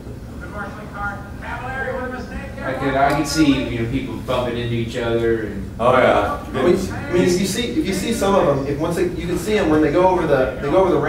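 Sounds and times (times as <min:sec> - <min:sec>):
low steady hum: 0:00.0 - 0:11.0
quiet speech: 0:05.4 - 0:11.0.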